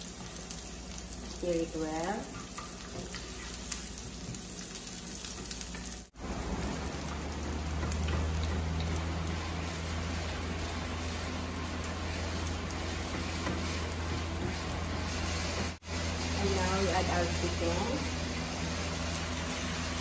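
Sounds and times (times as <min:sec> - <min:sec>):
garlic and onion sizzling in oil: 0:00.0 - 0:20.0
wooden spoon stirring: 0:02.2 - 0:15.8.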